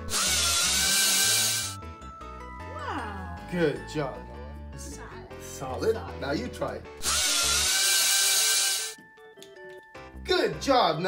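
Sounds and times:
toy drill whirring: 0:00.0 - 0:01.8, 0:07.0 - 0:09.0
soft background music: 0:00.0 - 0:11.0.

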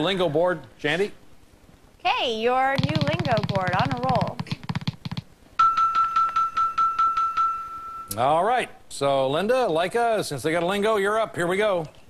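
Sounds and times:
steady held electronic tone: 0:05.6 - 0:08.3.

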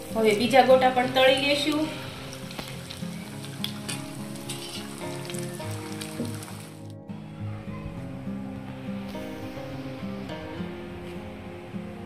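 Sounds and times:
background music: 0:00.0 - 0:12.0
fritters sizzling in hot oil: 0:01.0 - 0:06.8.

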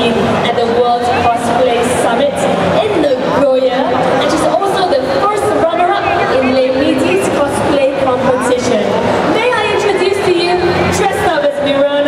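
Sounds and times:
woman speaking into a microphone: 0:00.0 - 0:12.0.

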